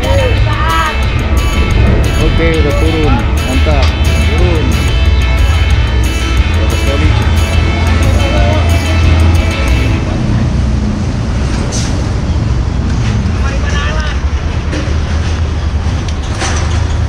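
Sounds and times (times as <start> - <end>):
people's voices: 0.0 - 10.8
diesel engine rumbling: 0.0 - 17.0.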